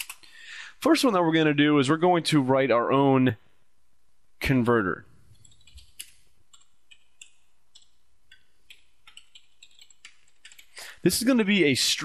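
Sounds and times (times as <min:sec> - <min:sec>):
computer keyboard typing: 0:05.3 - 0:10.8.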